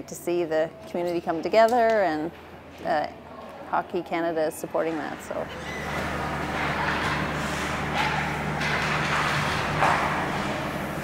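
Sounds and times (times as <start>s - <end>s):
hockey sticks clattering: 4.8s - 10.8s
steady low hum: 5.1s - 11.0s.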